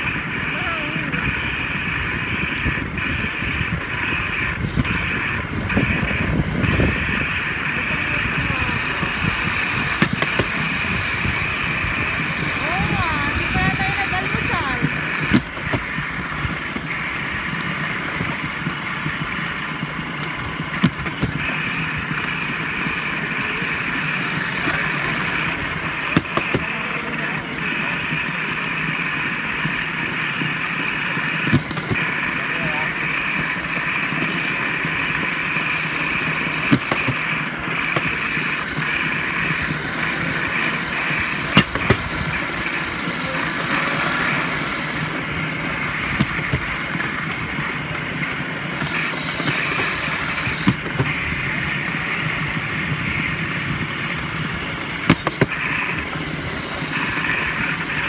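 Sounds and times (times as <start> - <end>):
train running on track: 0.0 - 58.0.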